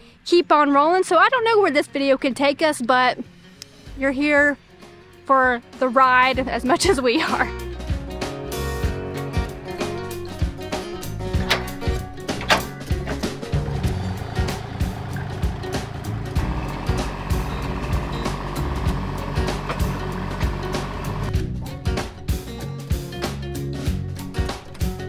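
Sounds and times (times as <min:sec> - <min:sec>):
background music with beat: 0:06.3 - 0:25.0.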